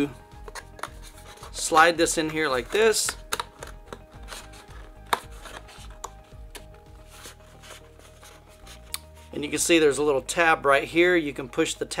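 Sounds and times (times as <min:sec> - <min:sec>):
cardboard sliding and scraping: 0:07.0 - 0:08.8.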